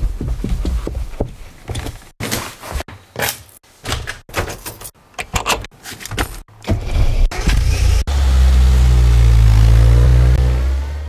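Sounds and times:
car engine starting and revving: 0:06.7 - 0:11.0.

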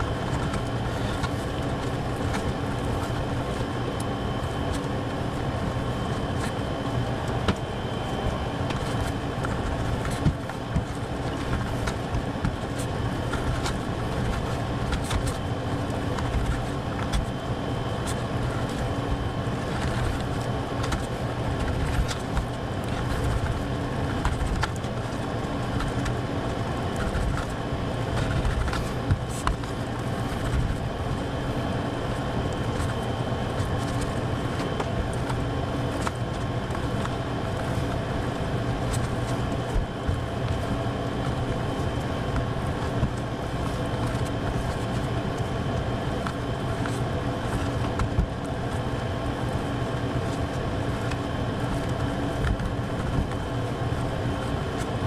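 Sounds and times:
machine hum with high whine: 0:00.0 - 0:55.0.

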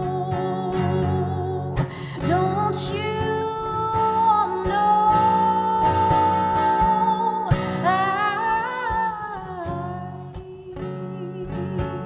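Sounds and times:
acoustic guitar ringing: 0:00.0 - 0:12.0.

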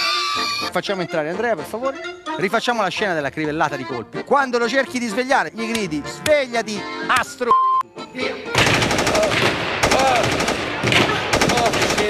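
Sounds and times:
person crying out: 0:00.0 - 0:00.8
machine-gun fire bursts: 0:08.6 - 0:12.0.

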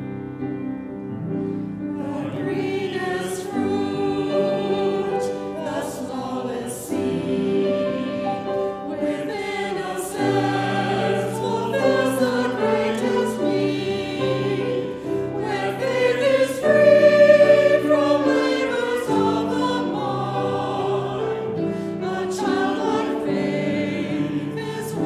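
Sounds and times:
choir singing in harmony: 0:00.0 - 0:25.0.

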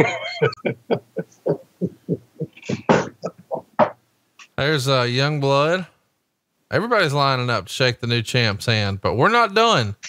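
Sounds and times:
man laughing: 0:00.0 - 0:03.6.

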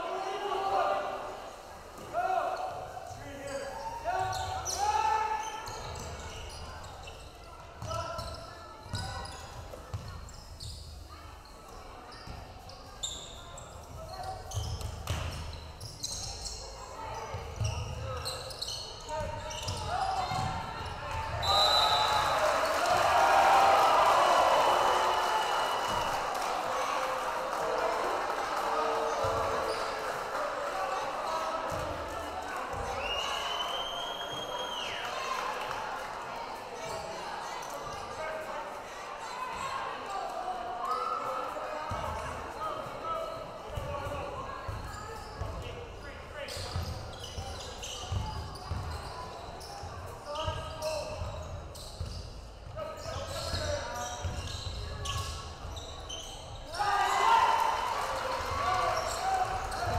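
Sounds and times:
crowd cheering: 0:21.1 - 0:36.5, 0:56.7 - 0:59.9.

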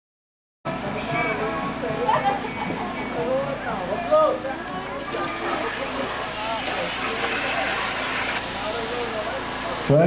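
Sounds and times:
onlookers talking: 0:00.7 - 0:10.0.

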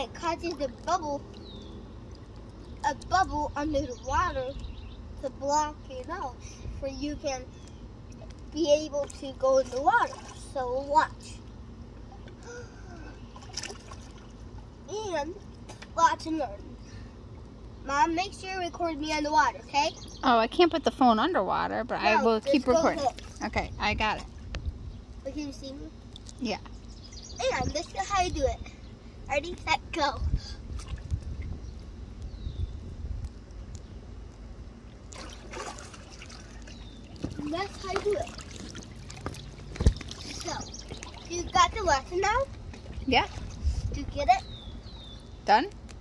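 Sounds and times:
pool water sloshing: 0:00.0 - 0:04.2, 0:08.1 - 0:12.4, 0:13.0 - 0:16.6, 0:21.0 - 0:24.5, 0:34.8 - 0:44.4
steady low rumble: 0:00.0 - 0:46.0
water splash: 0:35.1 - 0:41.3.

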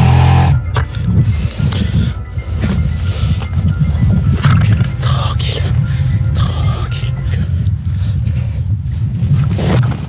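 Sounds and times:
motorcycle engine rumbling: 0:00.0 - 0:00.8.

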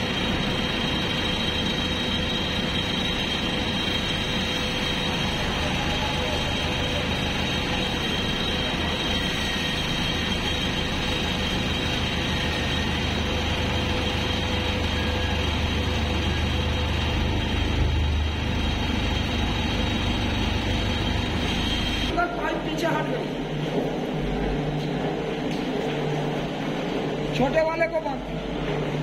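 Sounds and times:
diesel engine running: 0:00.0 - 0:27.4.

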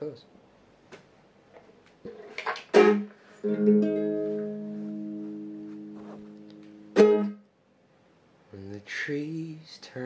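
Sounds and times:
strummed chord ringing: 0:02.8 - 0:07.5.

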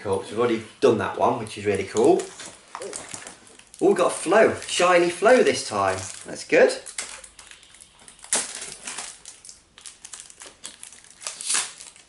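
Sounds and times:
foil wrappers crinkling: 0:01.8 - 0:12.0
sharp crackles: 0:01.9 - 0:12.0.

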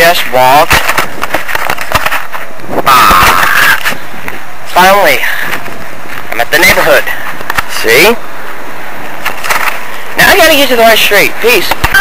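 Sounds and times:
camcorder handling knocks and rustle: 0:00.7 - 0:02.5.

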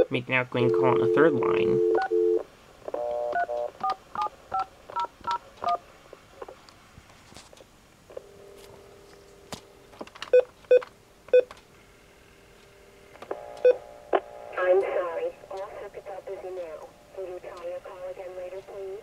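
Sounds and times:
recorded voice over phone line: 0:00.0 - 0:01.9, 0:14.6 - 0:19.0.

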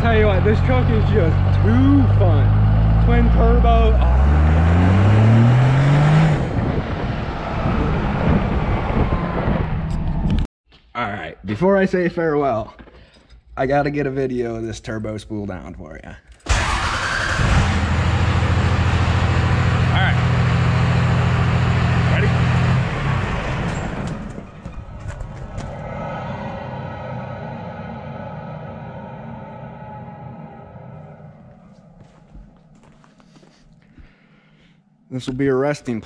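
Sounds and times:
diesel engine revving: 0:00.0 - 0:10.3, 0:16.5 - 0:32.9
turbos whining down: 0:00.0 - 0:10.4, 0:16.5 - 0:33.0.

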